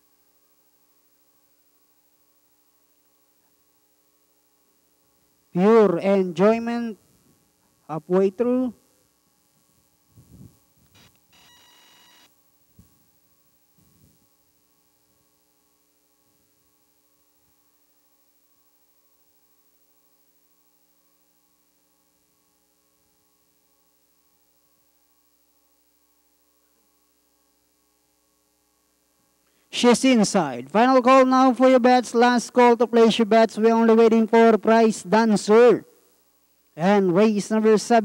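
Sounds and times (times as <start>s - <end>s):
faint electrical hum: 0.0s - 38.0s.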